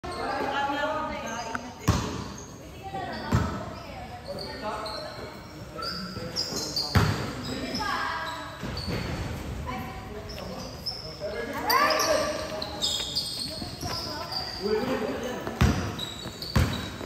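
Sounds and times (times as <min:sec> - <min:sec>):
basketball bouncing in hall: 0:01.7 - 0:04.0, 0:06.4 - 0:09.9, 0:11.9 - 0:17.0.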